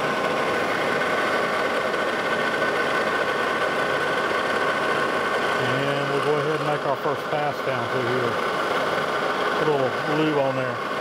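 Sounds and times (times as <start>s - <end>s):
metal lathe whining: 0.0s - 11.0s.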